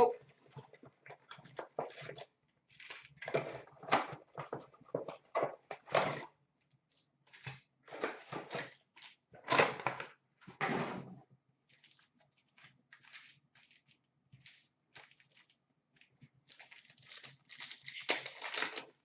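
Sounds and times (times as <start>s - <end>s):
foil packs rustling and crinkling: 11.7s - 19.0s.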